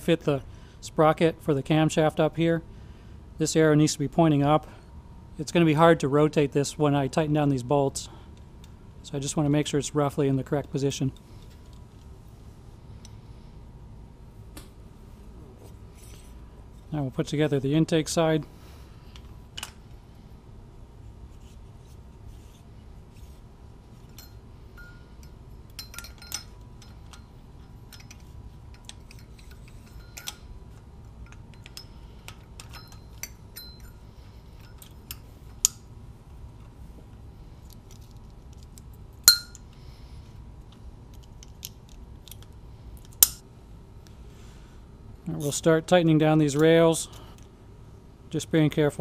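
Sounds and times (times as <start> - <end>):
low steady hum: 0.0 - 49.0
light metal clicks and clinks: 24.1 - 35.8, 37.7 - 39.8.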